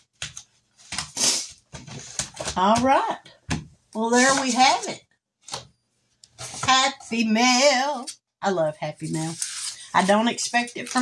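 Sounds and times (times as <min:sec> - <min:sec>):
paper rustle: 0:09.0 - 0:11.0.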